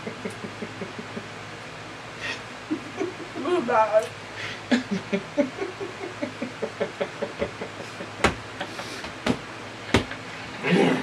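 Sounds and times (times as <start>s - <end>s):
muffled closed-mouth laughter: 0.0s - 1.4s, 2.2s - 3.5s, 4.5s - 9.1s.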